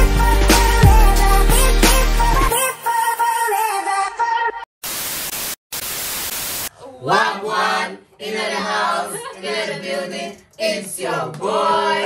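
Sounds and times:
static hiss: 4.8 - 6.7.

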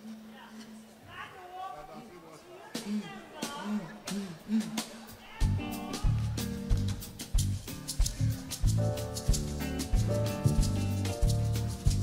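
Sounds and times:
faint voices in a hall: 0.0 - 10.8.

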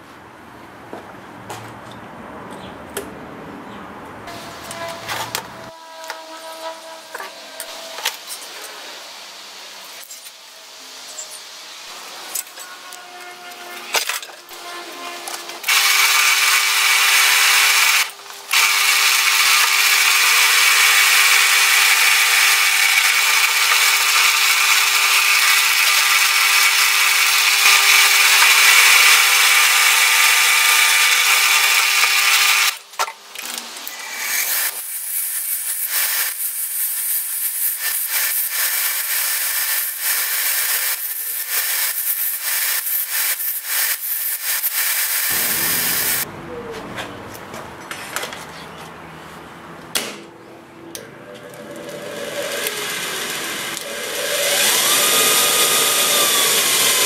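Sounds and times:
belt sander grinding steel: 9.9 - 32.8, 33.8 - 46.3, 51.3 - 57.0
drill press drilling steel: 15.7 - 32.8, 37.0 - 46.2, 51.4 - 57.0.

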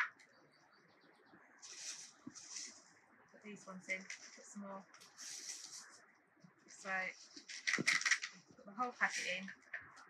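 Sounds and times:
paper seed packet rustling: 1.6 - 2.8, 5.0 - 6.0.

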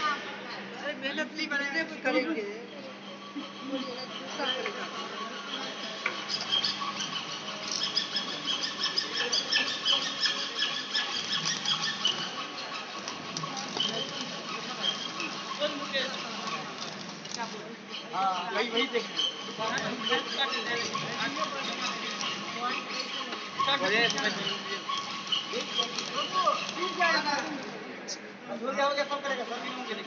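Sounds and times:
welding arc crackling: 5.6 - 27.8.

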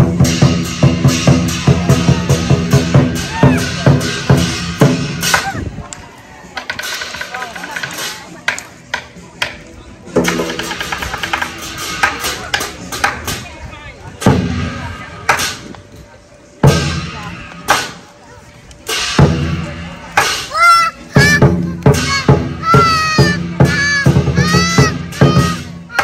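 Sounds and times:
drum strikes: 0.0 - 5.5, 6.6 - 13.5, 14.2 - 15.7, 16.6 - 18.0, 18.9 - 26.0
faint voices: 0.8 - 26.0.

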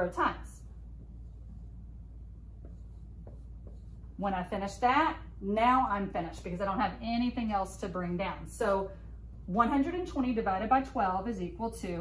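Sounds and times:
marker writing on whiteboard: 0.0 - 4.9.

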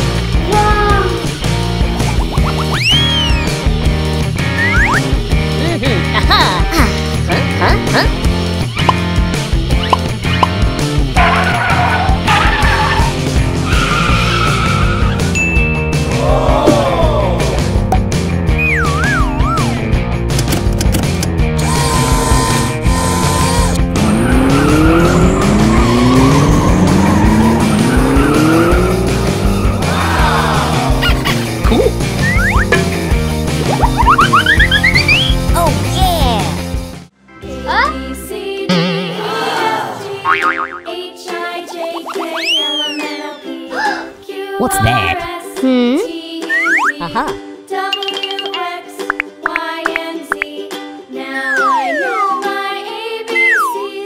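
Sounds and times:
background music: 0.0 - 54.0
rising bloops: 2.0 - 3.5, 4.5 - 5.1, 51.4 - 52.6
car tires screeching: 11.2 - 15.3, 21.6 - 31.0
cartoon boing: 38.7 - 39.2, 40.2 - 41.0.

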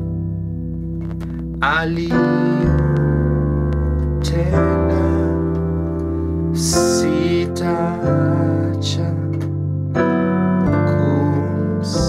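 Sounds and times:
piano playing hymn chords: 0.0 - 12.0.

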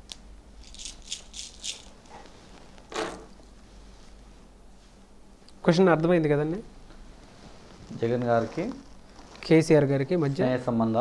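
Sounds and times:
shells rattling in hands: 0.6 - 2.0.

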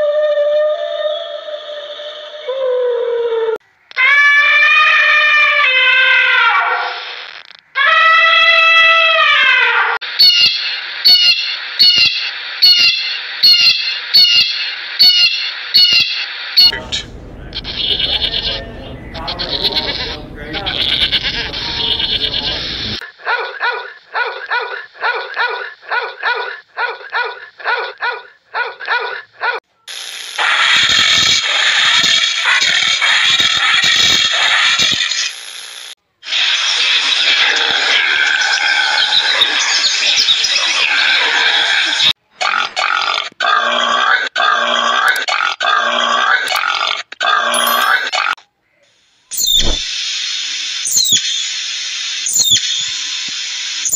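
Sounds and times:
evenly spaced animal calls: 10.2 - 29.1
dense animal noises: 16.7 - 23.0
puppy barking in high yaps: 23.2 - 29.6.

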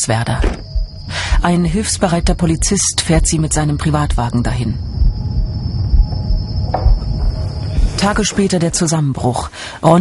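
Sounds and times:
crickets chirring: 0.0 - 10.0
low uneven rumble: 0.2 - 9.0.

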